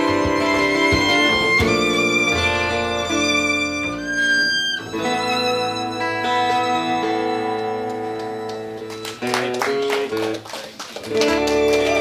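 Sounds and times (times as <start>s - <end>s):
violin melody: 0.0s - 10.1s, 11.2s - 12.0s
acoustic guitar: 0.0s - 10.4s.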